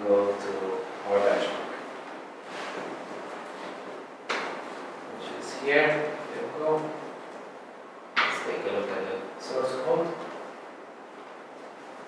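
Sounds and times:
man speaking: 0:00.0 - 0:01.7, 0:05.1 - 0:07.0, 0:08.4 - 0:10.2
room background noise: 0:00.0 - 0:12.0.

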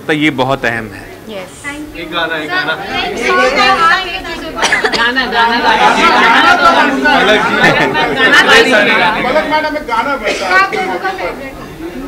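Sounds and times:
overlapping chatter: 0:01.0 - 0:12.0.

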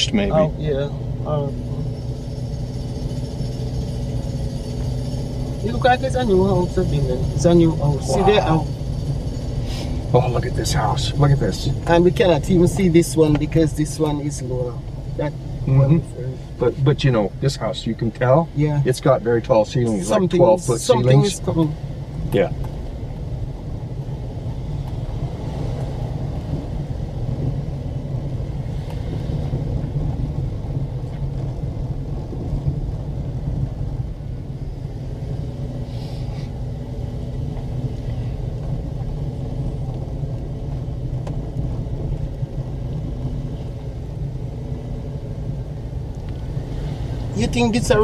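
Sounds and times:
car road rumble from inside: 0:00.0 - 0:48.0
faint engine hum: 0:00.0 - 0:48.0.

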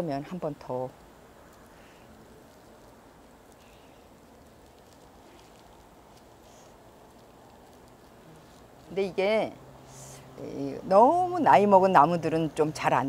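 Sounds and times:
plastic film and wire rustling: 0:00.0 - 0:12.9
low background hiss: 0:00.0 - 0:13.0.

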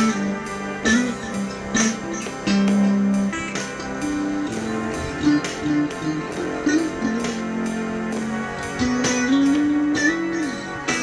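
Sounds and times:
electric guitar slow lead melody: 0:00.0 - 0:11.0.

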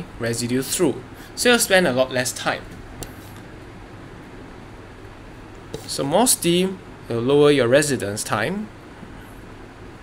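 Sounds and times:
low room hum and hiss: 0:00.0 - 0:10.0.

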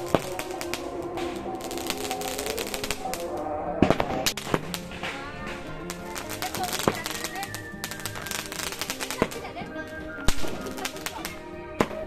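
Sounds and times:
firecracker bangs: 0:00.0 - 0:09.6, 0:10.2 - 0:12.0
background music with melody: 0:00.0 - 0:12.0
fireworks crackling and popping: 0:00.0 - 0:12.0.

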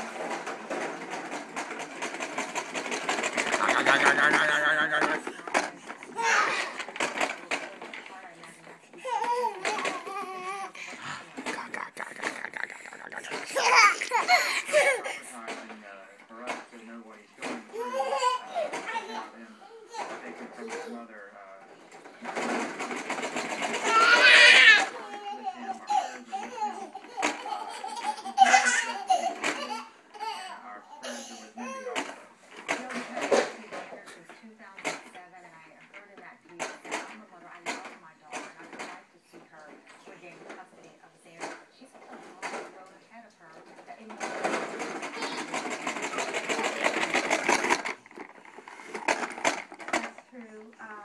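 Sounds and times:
toy lawn mower clicking: 0:00.0 - 0:35.2, 0:36.6 - 0:39.0, 0:43.5 - 0:51.0.

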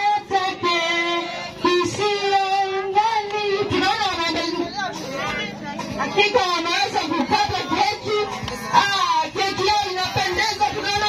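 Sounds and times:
woman singing: 0:00.0 - 0:04.8, 0:05.8 - 0:11.0.

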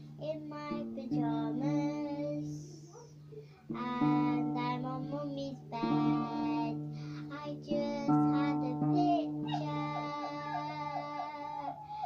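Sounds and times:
acoustic guitar strummed chords: 0:00.0 - 0:12.0
girl singing: 0:00.0 - 0:12.0.

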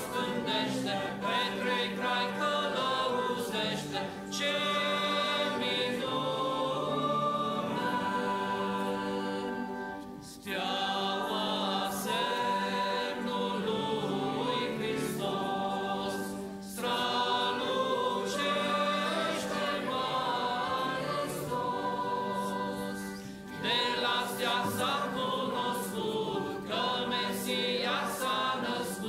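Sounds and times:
church choir singing a hymn: 0:00.0 - 0:29.0.

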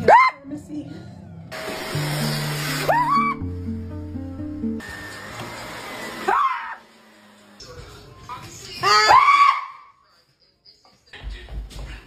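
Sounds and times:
person screaming: 0:02.9 - 0:03.4, 0:06.3 - 0:06.8, 0:08.8 - 0:09.9.

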